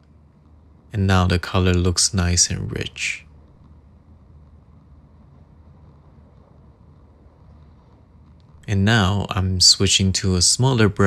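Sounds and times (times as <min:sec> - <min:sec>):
low rumble and hiss: 0:00.0 - 0:11.0.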